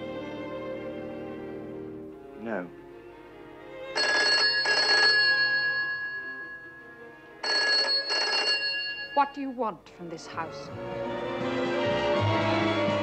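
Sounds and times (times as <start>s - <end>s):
soft background music: 0.0s - 13.0s
telephone bell double ring: 4.0s - 9.4s.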